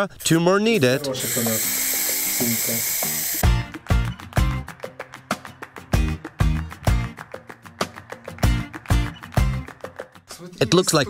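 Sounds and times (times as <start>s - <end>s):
spray can hissing: 1.0s - 3.4s.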